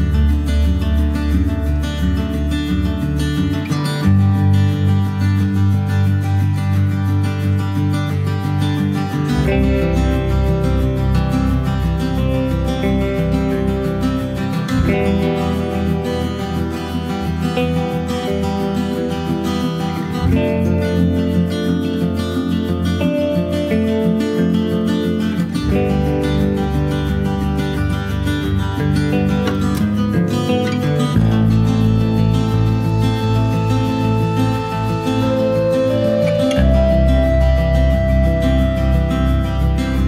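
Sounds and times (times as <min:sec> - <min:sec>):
strummed acoustic guitar music: 0:00.0 - 0:40.0.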